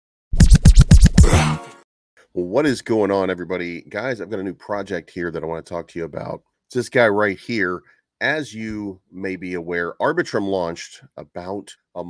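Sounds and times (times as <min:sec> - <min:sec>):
sharp electronic hits: 0:00.4 - 0:01.8.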